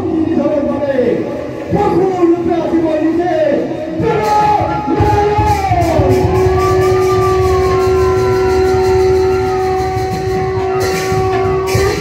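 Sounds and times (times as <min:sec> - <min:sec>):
dense low drumming: 0:05.0 - 0:12.0.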